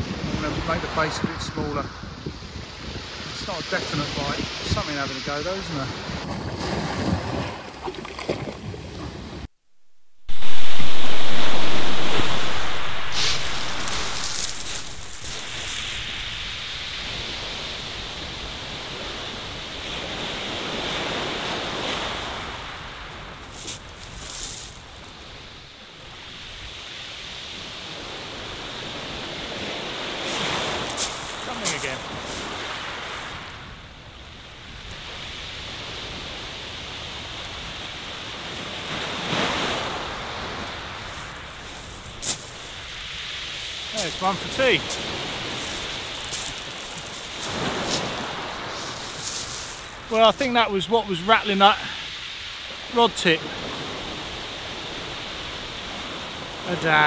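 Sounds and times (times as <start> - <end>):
wind buffeting microphone: 0.0 - 9.5, 10.3 - 50.4
short crackles: 10.4 - 16.4
small waves breaking on shingle: 11.4 - 19.2, 19.9 - 25.2, 30.2 - 33.5, 39.0 - 50.8.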